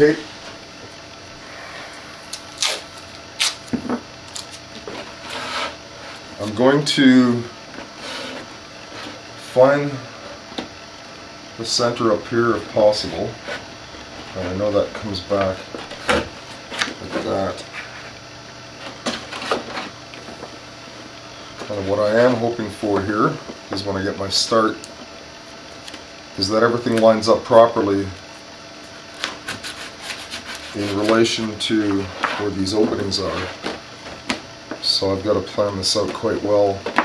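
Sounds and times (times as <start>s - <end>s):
low room hum: 0.0s - 37.0s
tape ripping off roll: 2.5s - 3.7s
vinyl sheet rustling and crackling: 28.2s - 37.0s.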